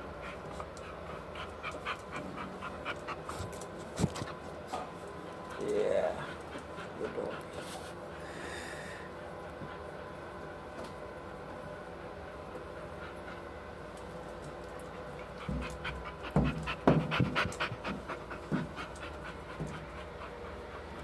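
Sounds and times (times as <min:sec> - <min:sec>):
dog panting: 0:00.0 - 0:08.3, 0:11.7 - 0:21.0
background hum: 0:00.0 - 0:21.0.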